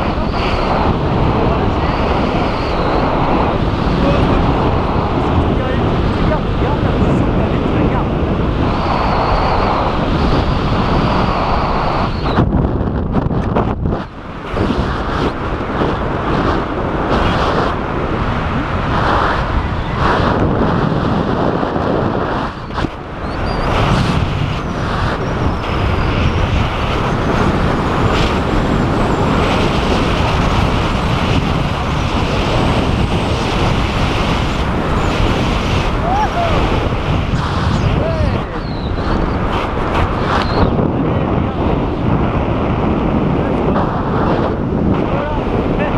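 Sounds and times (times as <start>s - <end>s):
strong wind on microphone: 0.0s - 45.9s.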